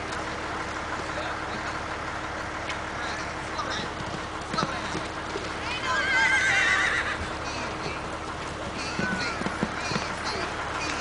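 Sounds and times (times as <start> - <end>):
horse hoofbeats on dirt: 3.5 - 11.0.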